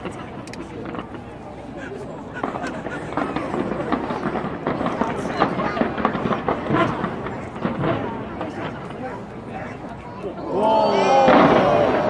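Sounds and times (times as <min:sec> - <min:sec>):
fireworks bangs and crackles: 0:00.0 - 0:12.0
people's voices: 0:00.0 - 0:12.0.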